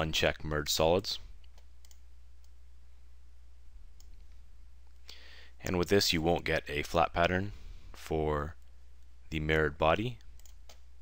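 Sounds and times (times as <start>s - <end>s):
low electrical hum: 0.0s - 11.0s
computer mouse clicks: 1.4s - 2.6s, 10.2s - 10.9s.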